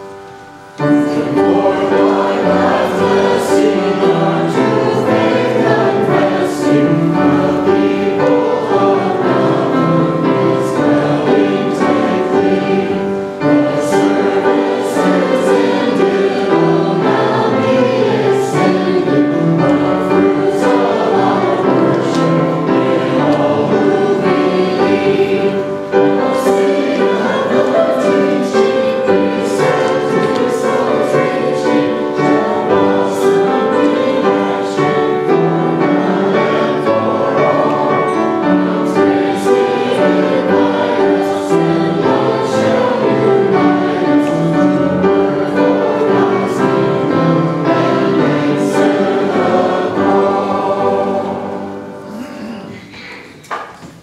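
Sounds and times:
choir singing a hymn: 0:00.0 - 0:53.7
piano accompaniment: 0:00.0 - 0:54.0.

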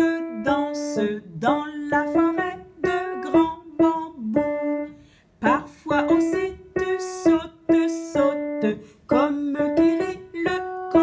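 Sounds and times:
person singing slow melody: 0:00.0 - 0:11.0.

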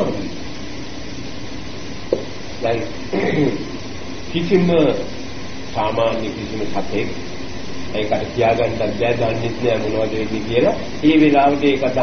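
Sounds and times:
faint low hum: 0:00.0 - 0:12.0
recording hiss: 0:00.0 - 0:12.0.

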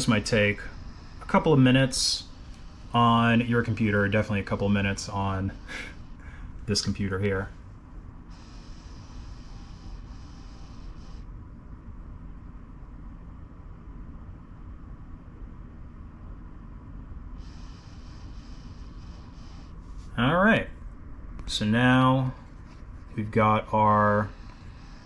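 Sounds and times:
faint hiss: 0:00.0 - 0:07.6
laptop hum and rumble: 0:00.0 - 0:25.0.

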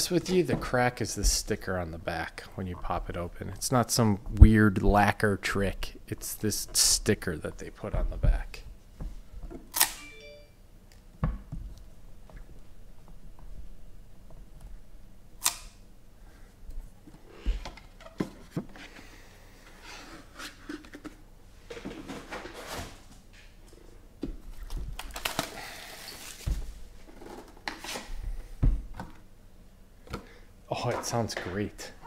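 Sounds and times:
sharp snap: 0:15.4 - 0:15.8
packaging tearing and rustling: 0:24.7 - 0:26.4.

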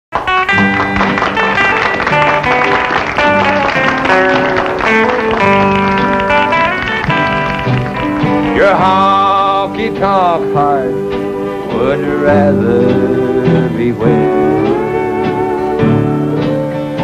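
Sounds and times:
country band playing: 0:00.1 - 0:17.0
strummed acoustic guitar: 0:00.1 - 0:17.0
sustained lead notes: 0:00.4 - 0:17.0.

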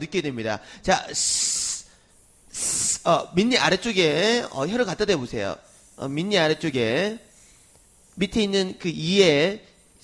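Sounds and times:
man making hissing s sounds: 0:00.6 - 0:04.9, 0:05.5 - 0:10.0.

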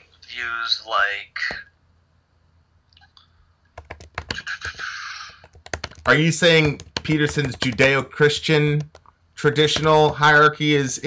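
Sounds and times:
keyboard typing: 0:03.7 - 0:10.4.

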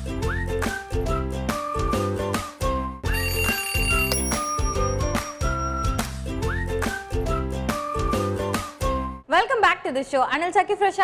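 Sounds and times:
upbeat theme music: 0:00.0 - 0:09.2
high bell-like ringing tone: 0:03.1 - 0:06.1.

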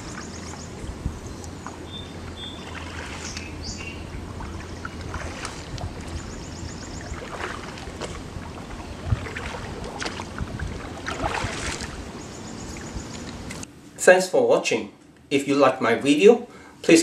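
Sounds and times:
wind on microphone: 0:00.0 - 0:13.6
outdoor ambience: 0:00.0 - 0:17.0
paddle splashing in water: 0:02.3 - 0:13.0.

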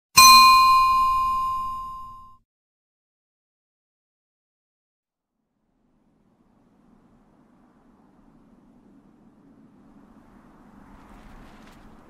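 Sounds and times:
bright bell ding: 0:00.2 - 0:02.4.

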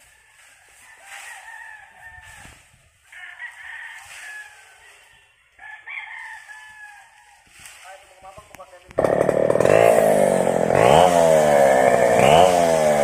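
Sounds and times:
rooster crowing: 0:00.0 - 0:07.4.

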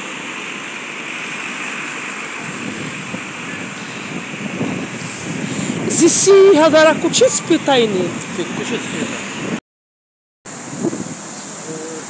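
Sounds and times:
distant street traffic: 0:00.0 - 0:09.6, 0:10.5 - 0:12.0
wind: 0:00.0 - 0:09.6, 0:10.5 - 0:12.0.

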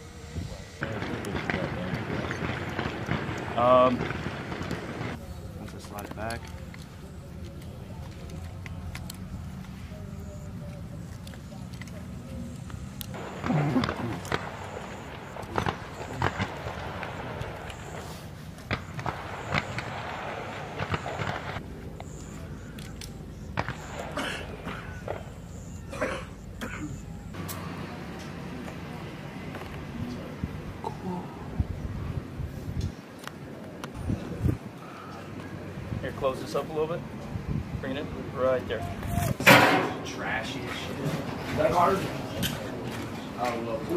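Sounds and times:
outdoor background noise: 0:00.0 - 0:43.9.

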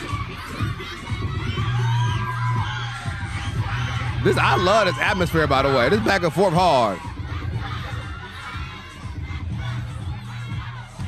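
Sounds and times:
bass-heavy dance music: 0:00.0 - 0:11.0
crowd shouting and cheering: 0:00.0 - 0:11.0.

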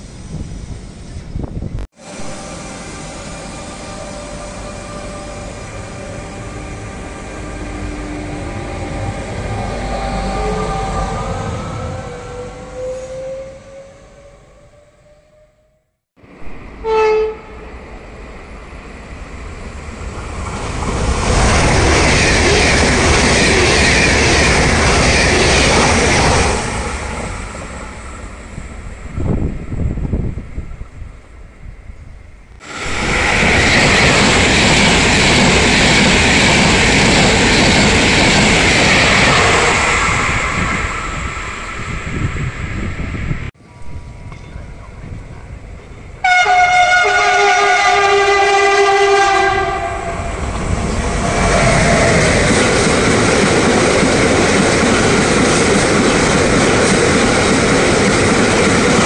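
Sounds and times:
train passing on rails: 0:00.0 - 0:59.0
train horn: 0:02.0 - 0:15.6, 0:16.8 - 0:17.6, 0:46.2 - 0:50.4.

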